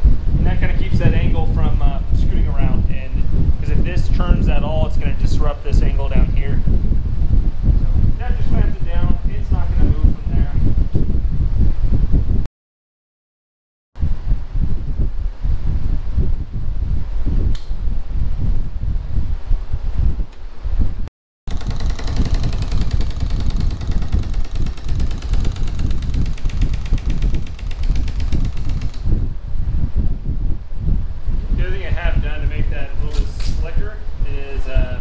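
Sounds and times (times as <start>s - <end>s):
pneumatic rivet gun hammering: 21.5s - 29.3s.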